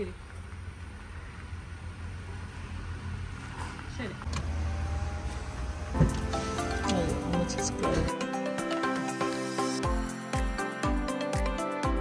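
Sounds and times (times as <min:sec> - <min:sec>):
car engine idling: 0:00.0 - 0:08.1.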